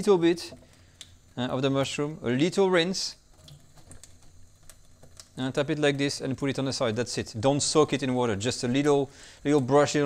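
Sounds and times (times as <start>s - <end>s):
tap water running into sink: 0.0s - 2.0s, 3.2s - 8.0s.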